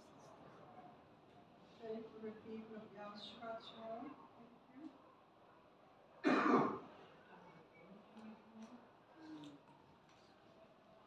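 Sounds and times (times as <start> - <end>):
man clearing his throat: 6.2 - 6.8.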